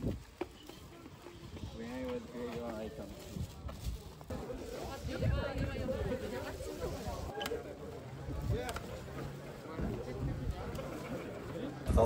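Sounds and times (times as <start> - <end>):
people talking: 0.4 - 12.0.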